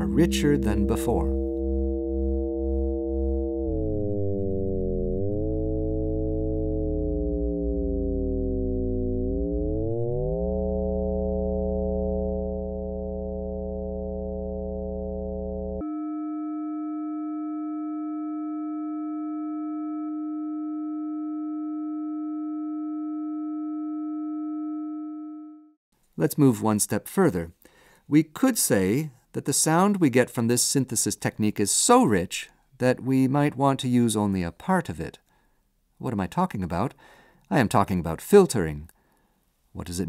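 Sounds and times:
synthesizer tone: 0.0s - 25.8s.

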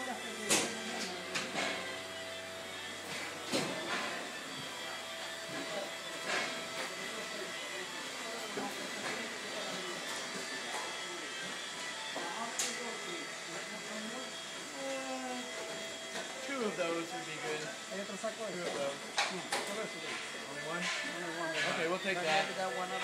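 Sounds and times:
steady mechanical drone: 0.0s - 23.0s.

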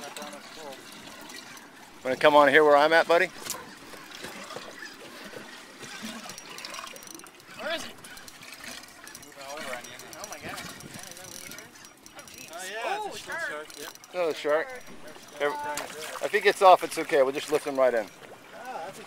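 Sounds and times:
water lapping against boat hull: 0.0s - 19.0s.

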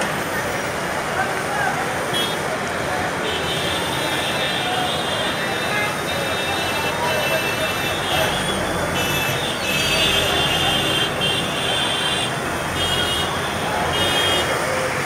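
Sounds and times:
heavy city traffic: 0.0s - 15.0s
people's voices: 0.0s - 15.0s.

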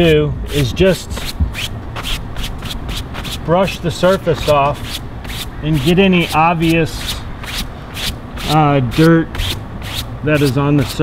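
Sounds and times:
brush sweeping over fabric: 0.0s - 11.0s.

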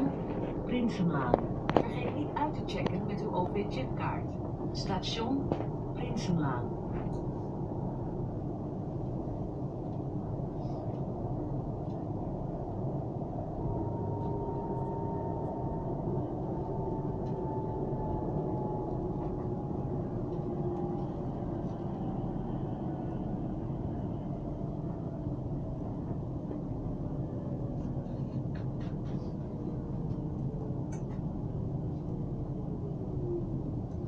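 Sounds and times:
train wheels rumbling on rails: 0.0s - 7.7s, 8.6s - 34.0s.

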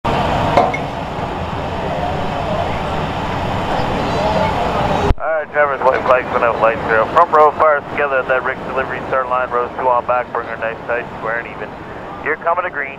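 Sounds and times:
race car engines rumbling: 0.1s - 12.9s
faint voices: 1.4s - 12.9s
radio voice: 5.2s - 12.9s.

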